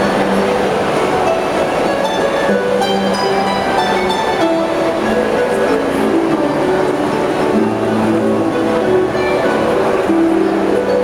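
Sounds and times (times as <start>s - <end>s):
echoing background noise: 0.0s - 11.0s
harps playing: 0.0s - 11.0s.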